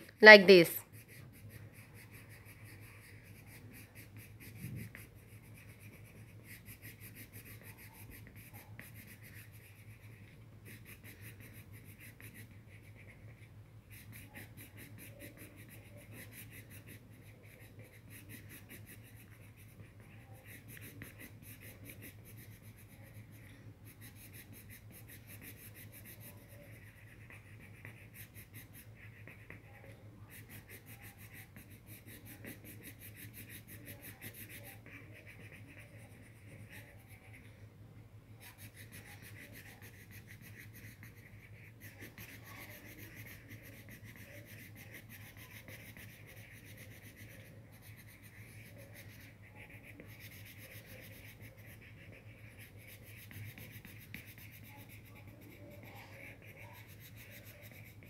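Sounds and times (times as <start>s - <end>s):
pencil scratching on paper: 0.0s - 37.6s, 38.4s - 58.0s
faint low hum: 0.0s - 58.0s.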